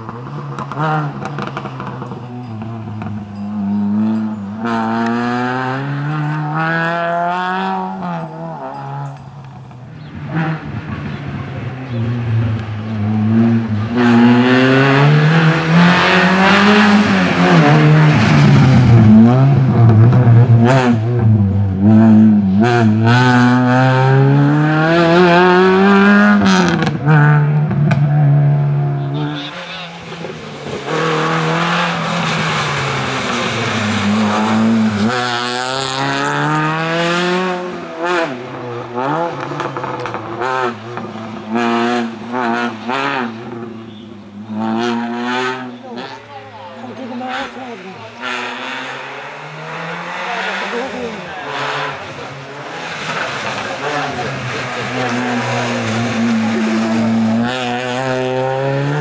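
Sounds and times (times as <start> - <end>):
car engine revving: 0.0 - 59.0.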